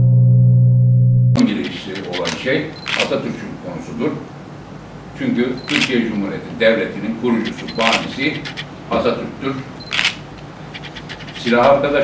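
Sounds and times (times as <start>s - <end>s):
gong-like tone: 0.0s - 1.4s
man talking: 1.4s - 4.3s, 5.2s - 9.8s, 11.4s - 12.0s.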